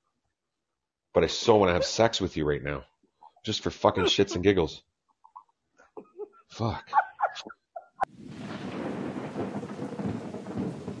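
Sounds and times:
heavy rain: 8.1 - 11.0
rolling thunder: 8.1 - 11.0.

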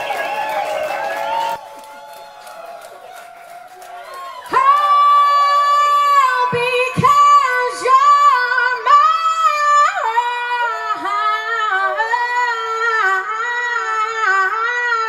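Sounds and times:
woman singing unaccompanied: 4.5 - 15.0.

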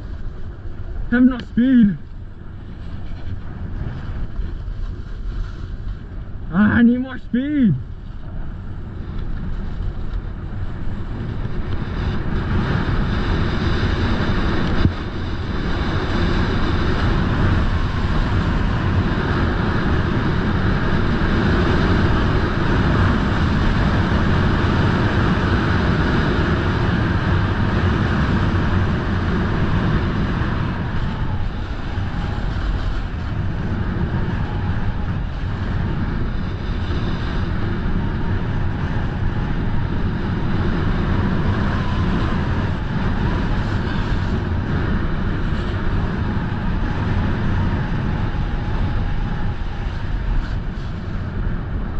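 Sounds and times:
wind rushing over microphone: 0.0 - 51.9
snowboard scraping on snow: 2.7 - 6.2.

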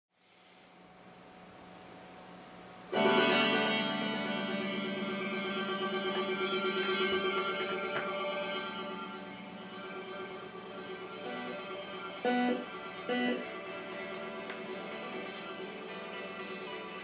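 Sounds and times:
faint hum: 0.2 - 17.0
electric guitar chord ringing: 2.9 - 17.0.

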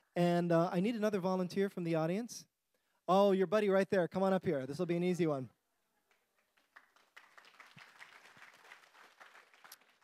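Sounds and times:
audience applause: 6.4 - 10.0.

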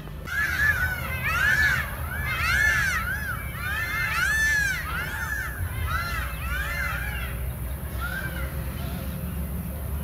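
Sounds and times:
chorus of birds calling: 0.0 - 9.6.

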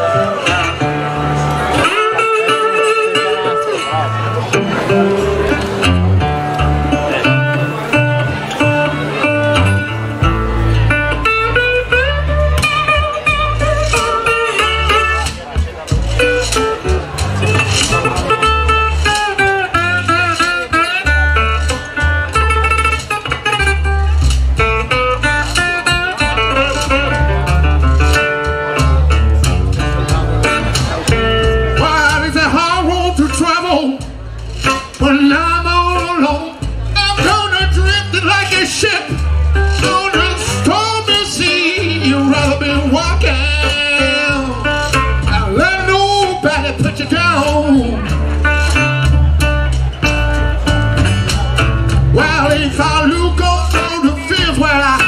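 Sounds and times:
harmonica high bending notes: 0.0 - 31.7
acoustic guitar strummed and picked: 0.0 - 55.0
upright double bass: 0.0 - 55.0.

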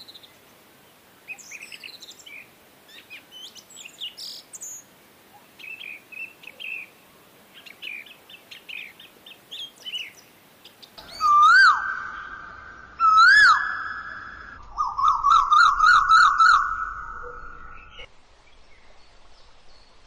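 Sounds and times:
birds chirping: 1.2 - 19.9
swooping whistled call: 11.0 - 18.1.

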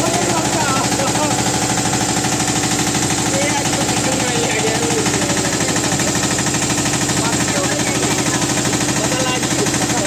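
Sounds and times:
motorboat engine chugging: 0.0 - 10.0.

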